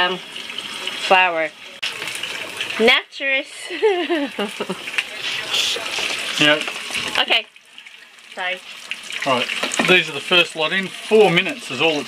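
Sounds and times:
woman laughing: 0:03.6 - 0:04.9.

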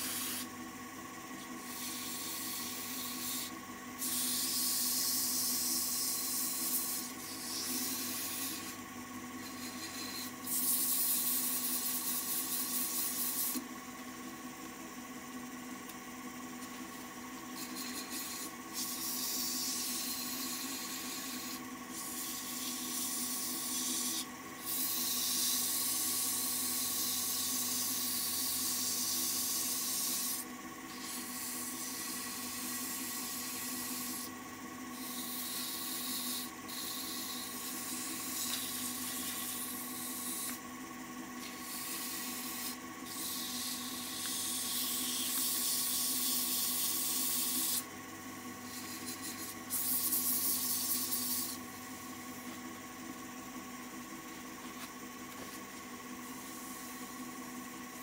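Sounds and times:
wood lathe hum: 0:00.0 - 0:58.0
paper pad rubbing wood: 0:35.0 - 0:40.6.

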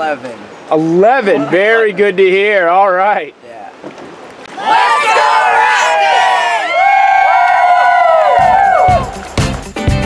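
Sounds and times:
group cheering loudly: 0:04.5 - 0:09.5.

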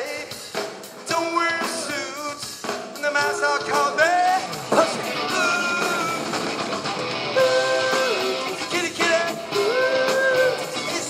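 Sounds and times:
live rock band playing: 0:00.0 - 0:11.0
person singing: 0:01.1 - 0:06.4, 0:07.3 - 0:11.0.

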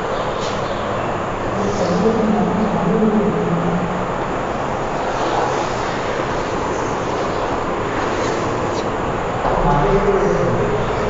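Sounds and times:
background rumble and hiss: 0:01.2 - 0:11.0.

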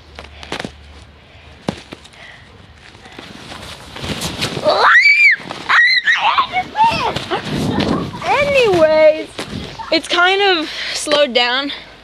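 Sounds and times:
scuffs and clicks in snow: 0:02.8 - 0:04.8, 0:06.4 - 0:10.2.

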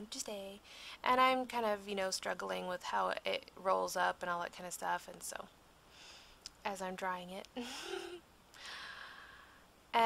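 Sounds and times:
woman laughing: 0:07.6 - 0:08.2
breathy sigh: 0:08.6 - 0:09.6.

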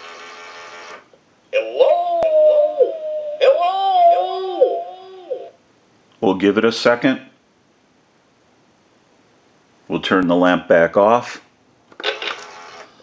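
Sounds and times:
cartoon voice sing-song holler: 0:01.6 - 0:05.5.

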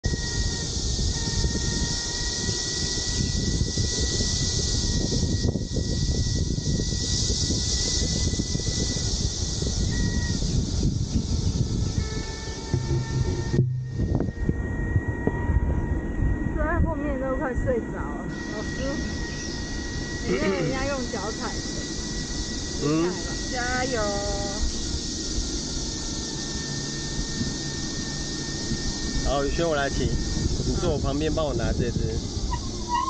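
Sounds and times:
steady high hiss: 0:00.0 - 0:33.0
wind and wheel rumble: 0:00.0 - 0:33.0.

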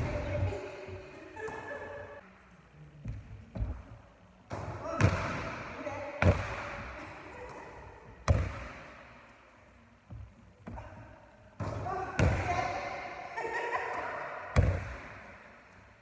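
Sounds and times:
ball bouncing on hardwood floor: 0:08.2 - 0:08.9.

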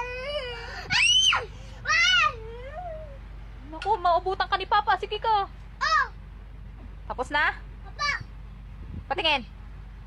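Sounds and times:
child shrieking and wailing: 0:00.0 - 0:03.2, 0:05.8 - 0:06.2.

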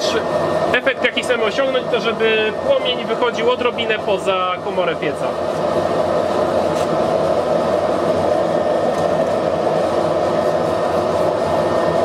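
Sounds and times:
forge burner and blower rushing: 0:00.0 - 0:12.0.

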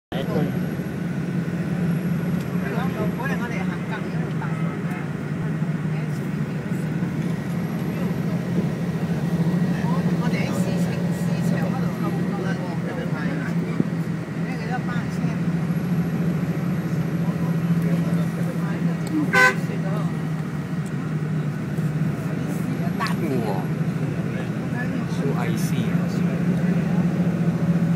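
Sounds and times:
vehicle engine and road noise: 0:00.1 - 0:27.9
people talking indistinctly: 0:09.6 - 0:27.3.

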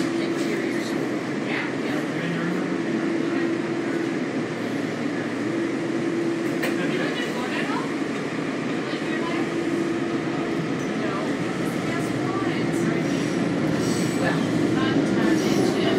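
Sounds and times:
train running noise and hum: 0:00.0 - 0:15.9.

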